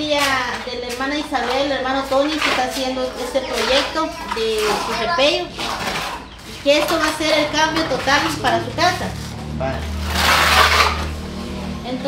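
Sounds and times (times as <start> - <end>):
trowel scraping wet plaster: 0.0 - 12.0.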